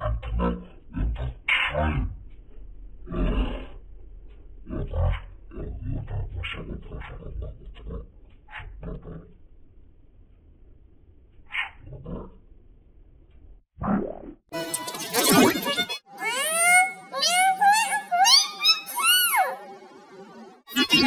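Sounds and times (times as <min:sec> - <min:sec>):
distorted growling voice: 0:00.0 - 0:02.4, 0:03.0 - 0:03.9, 0:04.6 - 0:09.4, 0:11.5 - 0:12.4, 0:20.7 - 0:21.0.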